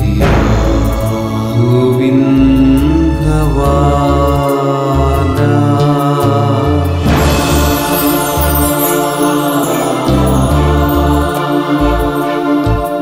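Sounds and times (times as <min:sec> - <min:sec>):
man singing devotional song: 0:00.0 - 0:13.0
orchestral backing: 0:00.0 - 0:13.0.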